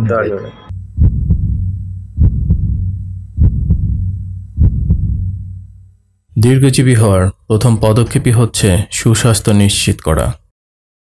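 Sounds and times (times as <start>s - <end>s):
heartbeat double thumps: 0.7s - 6.0s
low hum: 0.7s - 6.6s.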